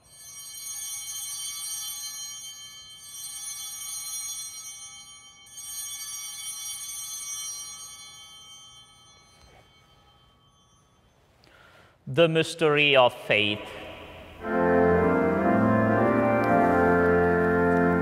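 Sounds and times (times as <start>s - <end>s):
altar bells ringing: 0.0s - 12.0s, 13.7s - 18.0s.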